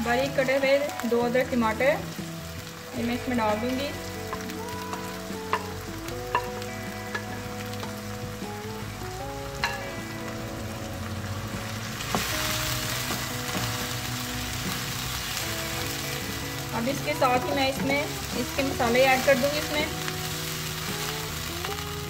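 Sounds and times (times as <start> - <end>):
soft background music: 0.0 - 22.0
vegetables sizzling in hot oil: 0.0 - 22.0.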